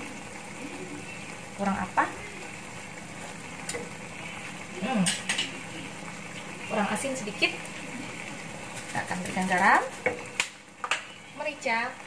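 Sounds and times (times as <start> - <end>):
gravy sizzling in a pan: 0.0 - 12.0.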